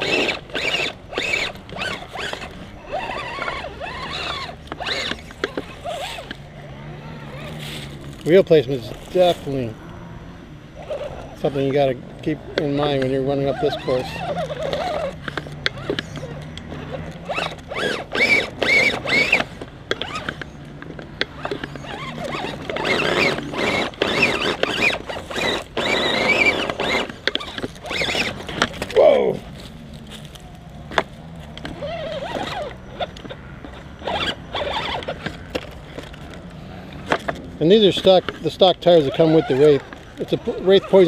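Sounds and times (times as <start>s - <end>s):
toy car electric motor whining: 0.0s - 41.0s.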